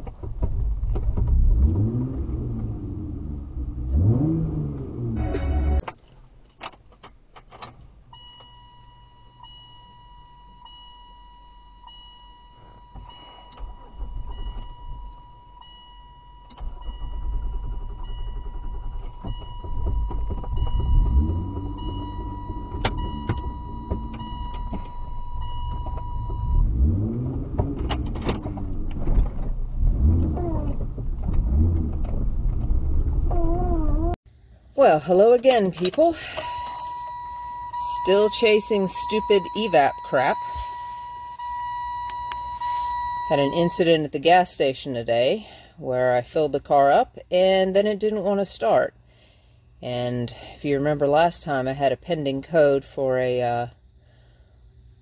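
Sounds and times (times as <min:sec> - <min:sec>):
car engine starting and revving: 0:00.1 - 0:05.9, 0:16.6 - 0:34.2
repeating dashboard chime: 0:05.0 - 0:05.8, 0:08.2 - 0:27.3, 0:34.9 - 0:44.1
clicks: 0:42.0 - 0:43.7.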